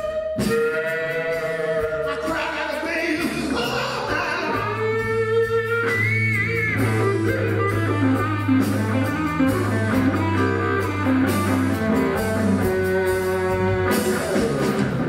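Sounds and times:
bass line: 0.0 - 15.0
drums: 0.0 - 15.0
electric guitar lead: 0.0 - 15.0.

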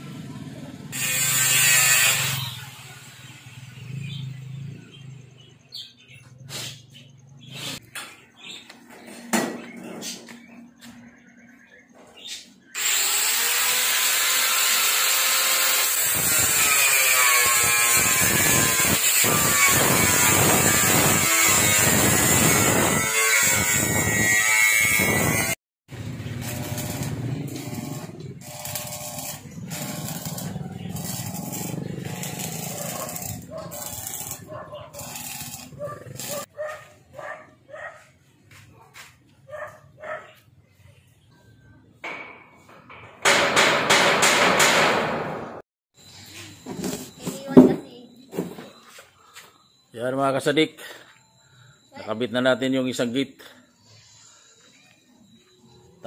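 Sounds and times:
loud power tool running: 12.8 - 24.3, 24.9 - 36.4
arc welding crackle: 25.9 - 36.5
scattered knocks: 42.0 - 45.4.

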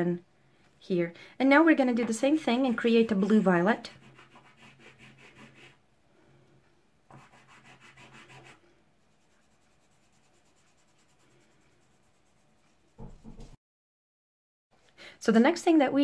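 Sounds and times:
fingertips rubbing pastel on paper: 2.6 - 5.8, 7.1 - 13.5.

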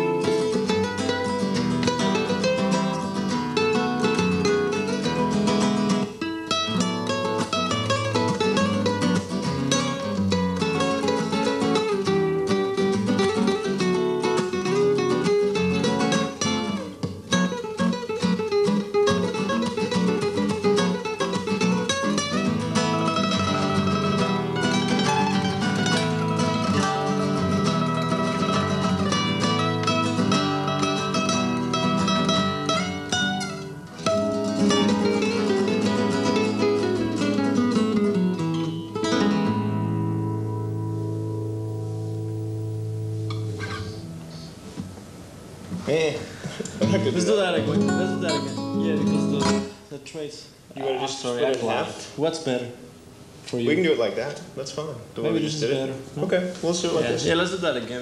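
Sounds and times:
acoustic guitar duet: 0.0 - 58.0.

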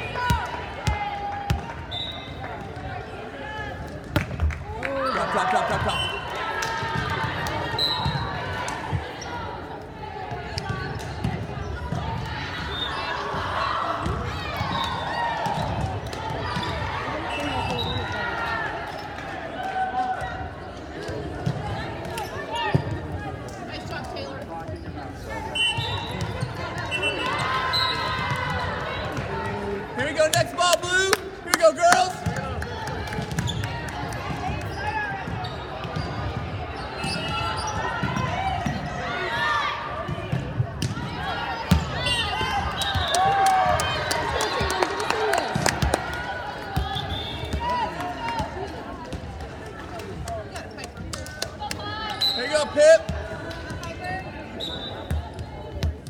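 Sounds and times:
voices of players and spectators: 0.0 - 56.0.

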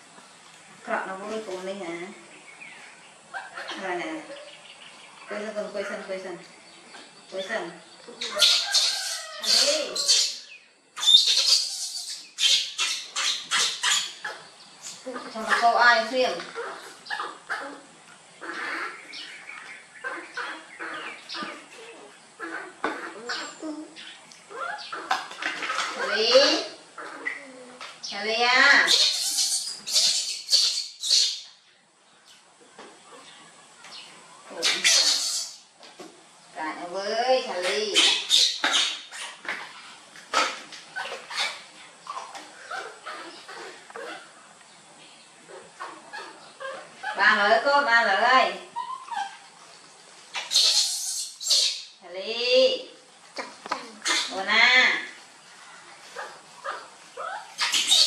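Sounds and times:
baby monkey squeaky cries: 8.2 - 15.0, 28.7 - 31.5, 34.6 - 35.6, 37.6 - 39.4, 48.8 - 49.5, 50.3 - 51.9, 54.0 - 54.5, 56.7 - 58.0.

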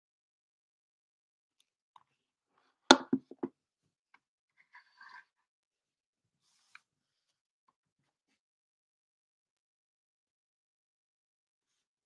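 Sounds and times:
soft thumps: 2.9 - 3.5
webcam handling knocks: 2.9 - 3.5.

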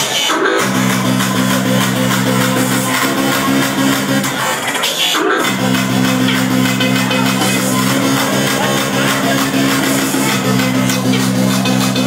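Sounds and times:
hardcore electronic music: 0.0 - 12.0.

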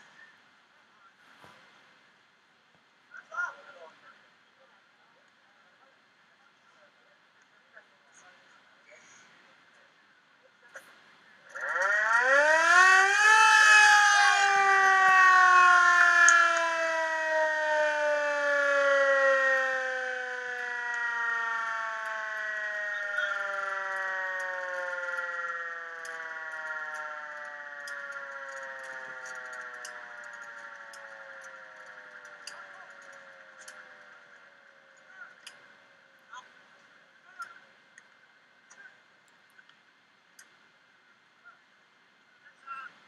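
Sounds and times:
motor-driven siren wailing: 11.5 - 36.1.

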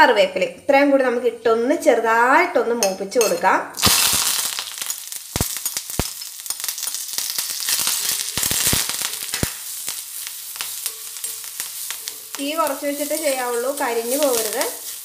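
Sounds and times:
food sizzling in hot oil: 3.8 - 15.0.

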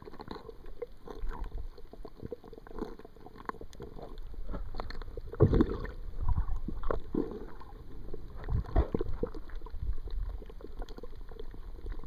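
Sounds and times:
muffled underwater bubbling: 0.0 - 12.0.

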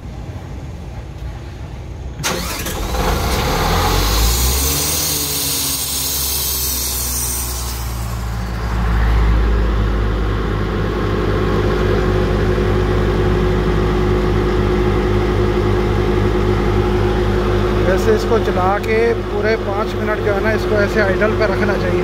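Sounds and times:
diesel engine starting and running: 0.0 - 22.0.

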